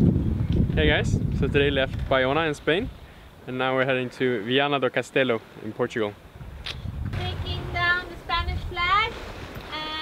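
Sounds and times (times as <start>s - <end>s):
low rumble: 6.9s - 9.0s.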